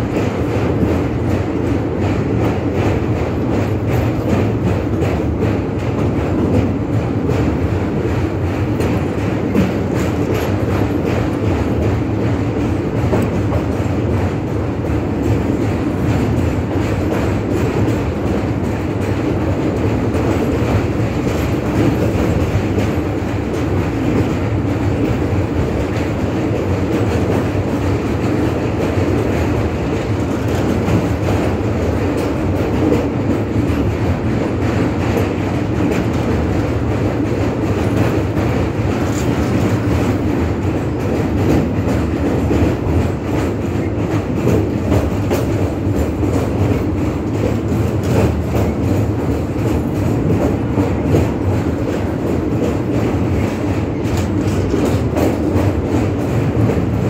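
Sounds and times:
train wheels on rails: 0:00.0 - 0:57.0.

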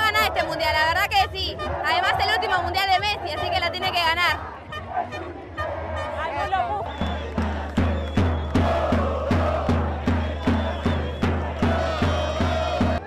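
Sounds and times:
crowd chanting: 0:00.0 - 0:13.0
steady drum beat: 0:06.8 - 0:13.0.

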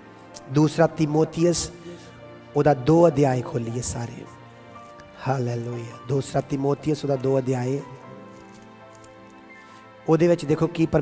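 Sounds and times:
soft music with sustained chords: 0:00.0 - 0:11.0.

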